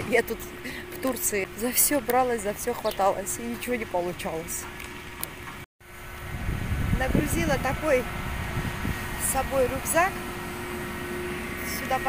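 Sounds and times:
low rumble: 5.9s - 12.0s.

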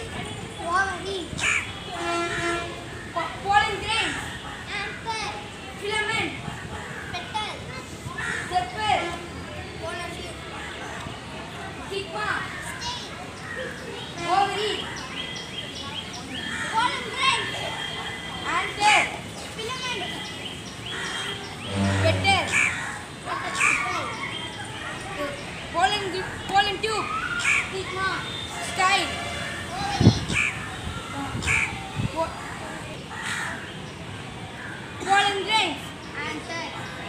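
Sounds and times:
children's voices: 0.0s - 15.1s, 15.9s - 33.7s, 34.6s - 37.0s
crow cawing: 20.9s - 23.8s, 30.3s - 30.7s, 33.1s - 33.7s.

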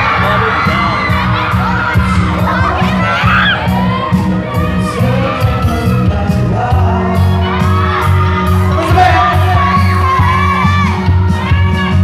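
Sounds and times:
audience shrieking and cheering: 0.0s - 12.0s
pop backing track with bass beat: 0.0s - 12.0s.

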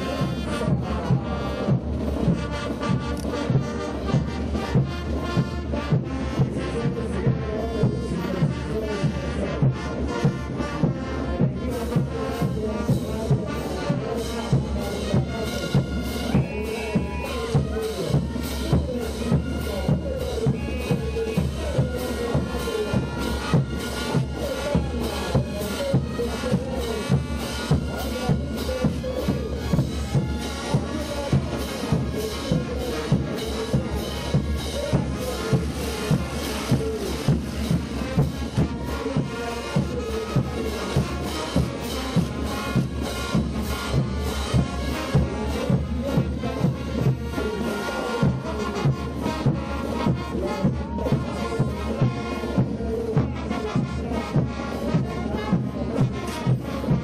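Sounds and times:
brass band horns: 0.0s - 57.0s
steady bass drum beat: 0.0s - 57.0s.

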